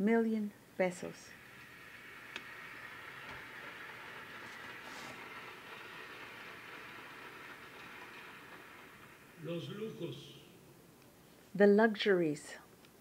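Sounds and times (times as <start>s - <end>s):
audience applause: 3.0s - 10.4s.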